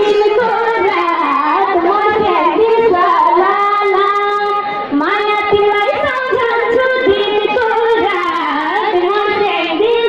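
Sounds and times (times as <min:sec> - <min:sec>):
high voice singing: 0:05.2 - 0:08.2.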